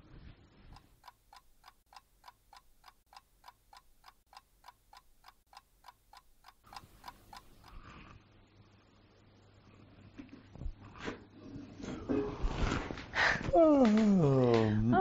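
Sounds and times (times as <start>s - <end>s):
rapid clock ticking: 0.7s - 7.9s.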